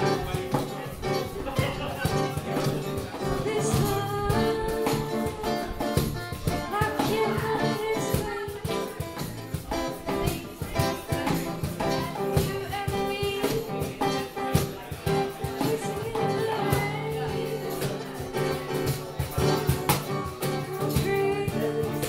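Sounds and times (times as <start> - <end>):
strummed acoustic guitar: 0.0 - 22.0
woman singing: 3.2 - 18.7, 20.3 - 22.0.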